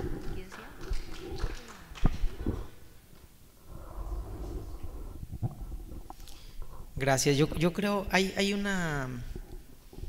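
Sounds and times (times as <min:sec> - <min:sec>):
soft voices: 0:00.0 - 0:02.8.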